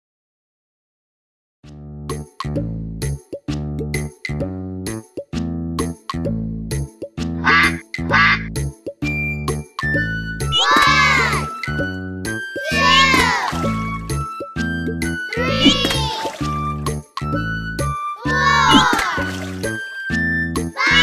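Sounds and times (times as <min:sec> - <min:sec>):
upbeat children's song: 0:02.4 - 0:21.0
cartoon ducks quacking: 0:07.4 - 0:08.5.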